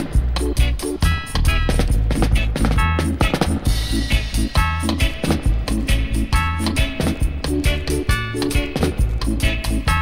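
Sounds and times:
reggae dub instrumental: 0.0s - 10.0s.

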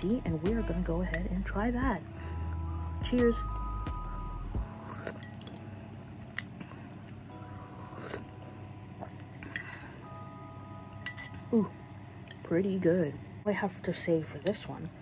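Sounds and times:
faint background music: 0.0s - 15.0s
person sipping and chewing soup: 4.5s - 10.4s.

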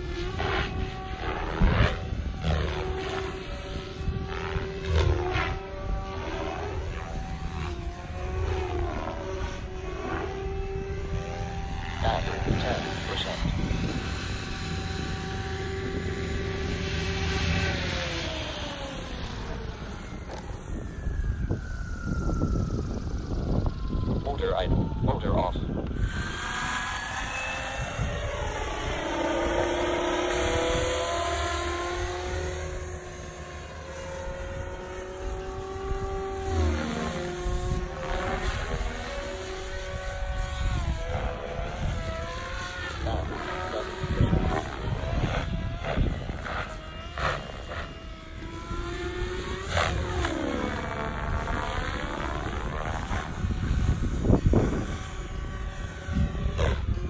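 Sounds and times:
rc helicopter rotor whine: 0.0s - 57.0s.

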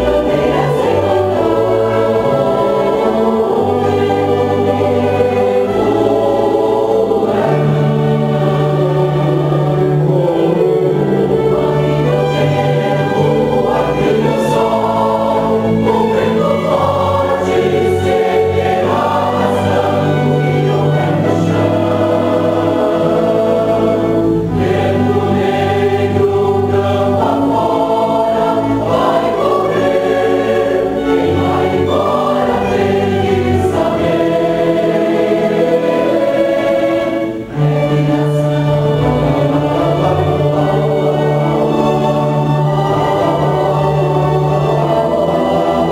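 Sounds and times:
mixed choir singing: 0.0s - 45.9s
string ensemble: 0.0s - 45.9s.

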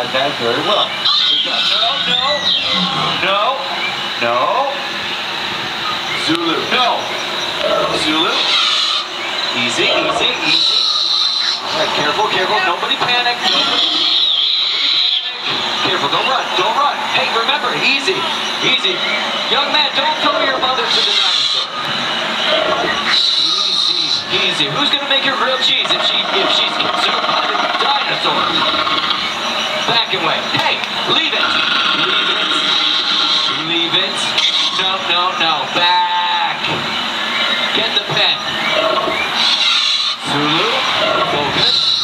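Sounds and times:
crowd noise hiss: 0.0s - 42.0s
shrill drawn-out screech: 8.2s - 9.1s, 10.4s - 11.8s, 23.1s - 24.3s, 31.6s - 33.7s.

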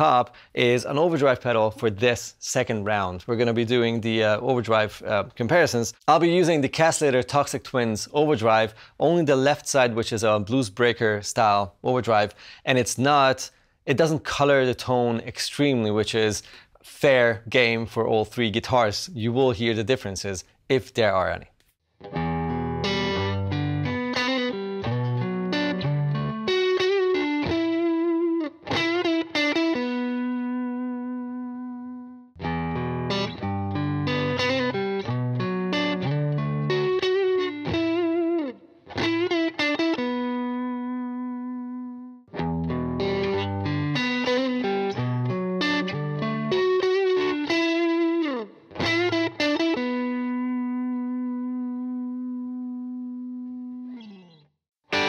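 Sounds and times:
overdriven electric guitar riff: 22.0s - 55.0s.

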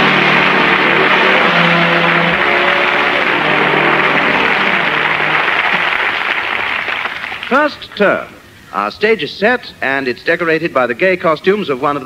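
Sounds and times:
orchestra playing sustained notes: 0.0s - 6.5s
audience applauding: 0.0s - 8.2s.

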